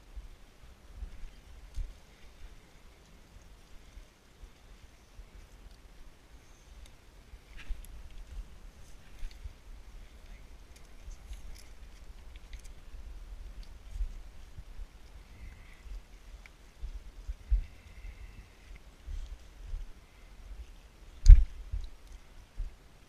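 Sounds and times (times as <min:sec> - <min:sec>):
wind buffeting microphone: 0:07.3 - 0:22.8.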